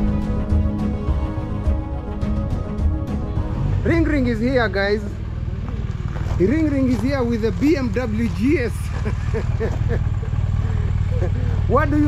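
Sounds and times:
motorcycle engine idling: 2.6 - 12.0.

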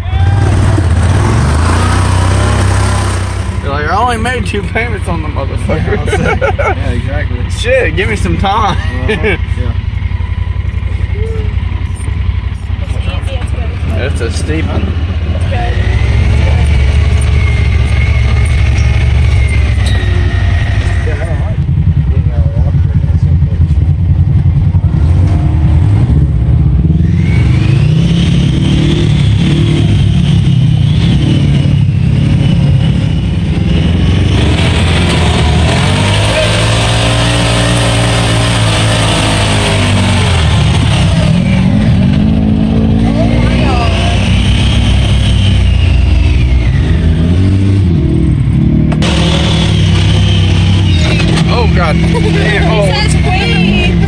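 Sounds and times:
off-road vehicle engine revving: 0.0 - 54.0
high whine: 15.8 - 22.6, 26.8 - 54.0.

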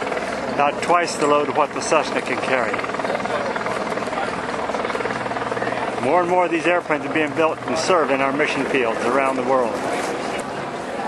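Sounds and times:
pulsing mechanical drone: 0.0 - 11.0.

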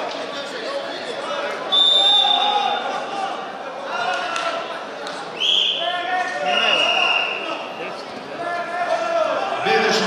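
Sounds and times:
voices shouting in a hall: 0.0 - 10.0.

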